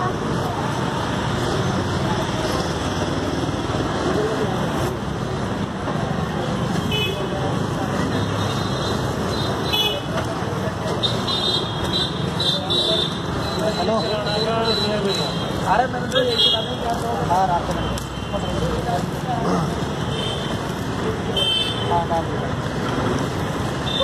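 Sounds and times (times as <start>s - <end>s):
busy street traffic: 0.0s - 24.0s.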